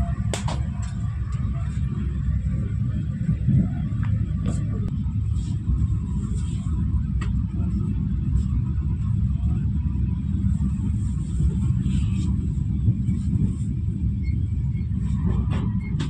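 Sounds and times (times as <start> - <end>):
passenger train rumbling: 0.0 - 16.0.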